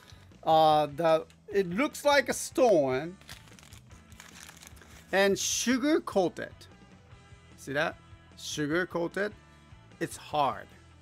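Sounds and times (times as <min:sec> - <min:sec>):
paper bag crinkling: 0:03.2 - 0:05.2.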